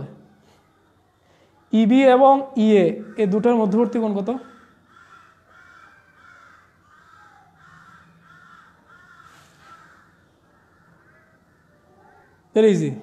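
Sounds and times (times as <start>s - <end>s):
faint bird calls: 3.0s - 12.6s.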